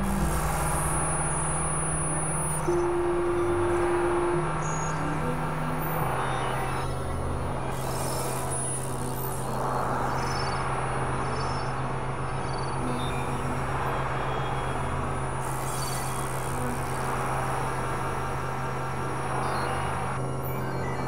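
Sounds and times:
steady low hum: 0:00.0 - 0:20.3.

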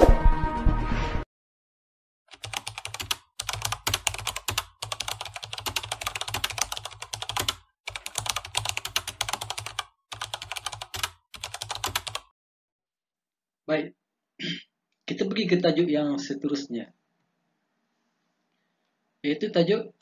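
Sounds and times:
keyboard typing: 0:02.3 - 0:12.3.

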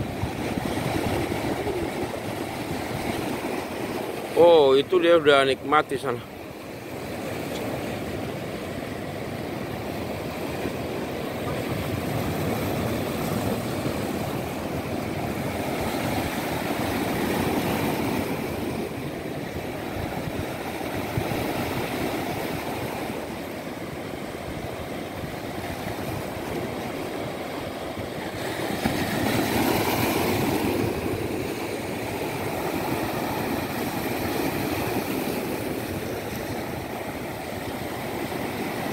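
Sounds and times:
ocean waves breaking: 0:00.0 - 0:38.9.

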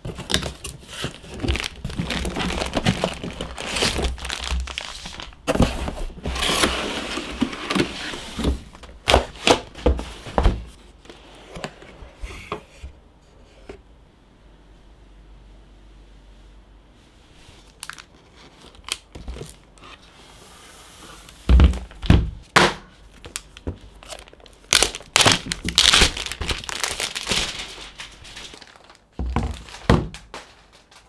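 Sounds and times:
plastic sleeve crinkling: 0:00.0 - 0:05.6, 0:23.2 - 0:31.0.

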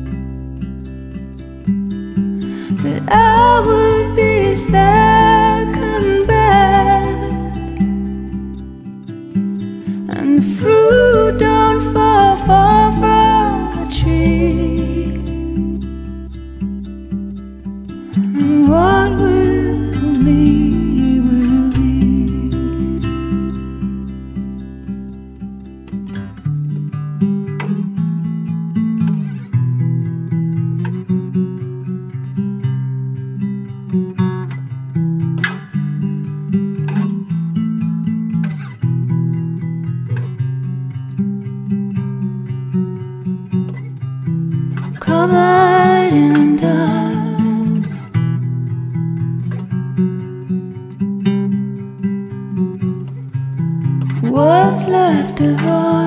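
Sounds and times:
plucked acoustic guitar: 0:00.0 - 0:56.0
person singing: 0:02.5 - 0:08.1, 0:10.0 - 0:15.8, 0:18.2 - 0:23.6, 0:45.0 - 0:48.1, 0:54.2 - 0:56.0.

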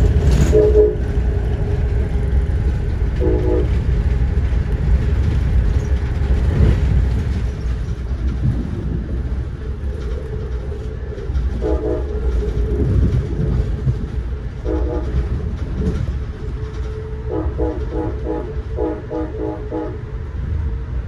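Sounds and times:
train rumbling: 0:00.0 - 0:21.0
train horn blasts: 0:00.3 - 0:01.2, 0:03.2 - 0:03.9, 0:11.6 - 0:12.3, 0:14.6 - 0:15.4, 0:17.0 - 0:20.4.

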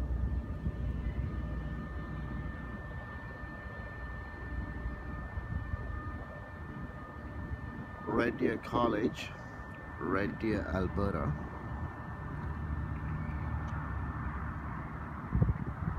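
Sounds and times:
faint high whine: 0:00.0 - 0:15.9
low outdoor rumble: 0:00.0 - 0:15.9.

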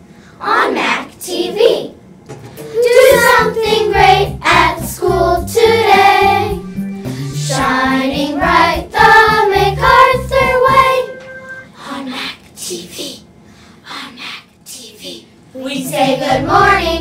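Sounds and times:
backing track with pulsing bass: 0:02.6 - 0:11.6
children singing: 0:02.7 - 0:06.7, 0:07.3 - 0:11.6, 0:15.8 - 0:17.0.

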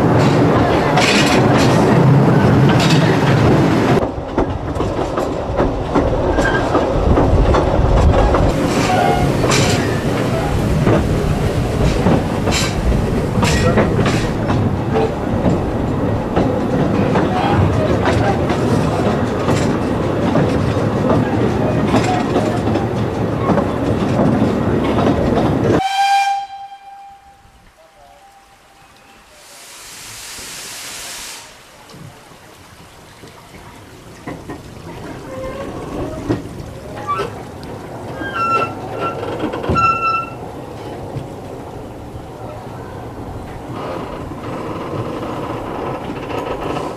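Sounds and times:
wheels clicking over rail joints: 0:00.0 - 0:26.5, 0:31.8 - 0:46.9
train carriage rumbling: 0:00.0 - 0:46.9
steam whistle: 0:25.8 - 0:30.0
steam hissing: 0:28.0 - 0:32.1.

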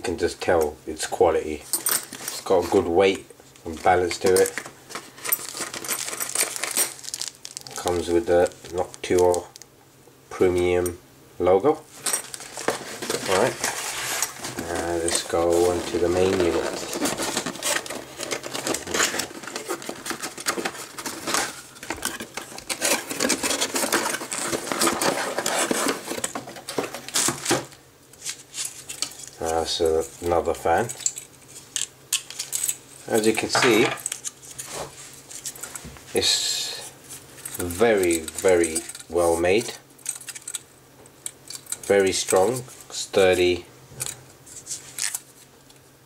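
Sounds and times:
cardboard rustling and scraping: 0:03.7 - 0:09.4, 0:11.9 - 0:30.4, 0:33.2 - 0:39.6
plastic bags crinkling: 0:03.8 - 0:09.6, 0:12.0 - 0:27.4
metal parts clinking: 0:04.2 - 0:07.9, 0:30.8 - 0:34.3, 0:37.4 - 0:39.3, 0:40.0 - 0:40.6.

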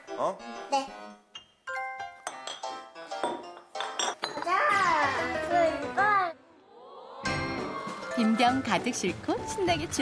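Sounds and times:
light music with bell-like notes: 0:00.0 - 0:05.9.

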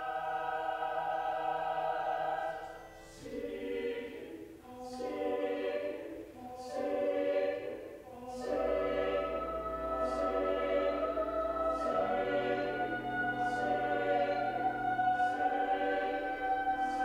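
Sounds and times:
mixed choir singing: 0:00.0 - 0:17.0.

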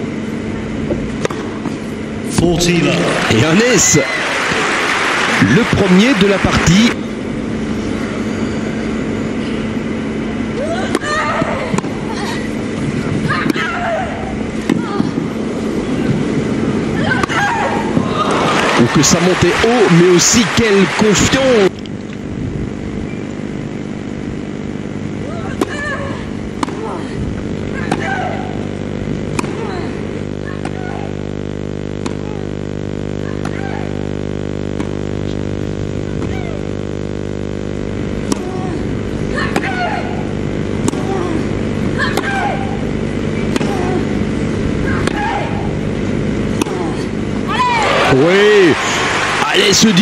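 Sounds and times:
steady low hum: 0:00.0 - 0:50.0
players grunting: 0:02.4 - 0:07.0, 0:17.0 - 0:21.7, 0:46.5 - 0:50.0
racket striking tennis ball: 0:38.2 - 0:38.6, 0:43.5 - 0:43.9.

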